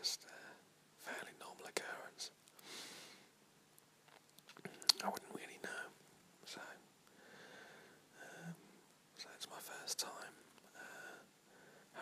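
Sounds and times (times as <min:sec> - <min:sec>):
man whispering: 0:00.0 - 0:02.4, 0:04.6 - 0:06.9, 0:08.1 - 0:08.6, 0:09.2 - 0:11.3
mouth clicks: 0:04.1 - 0:05.2.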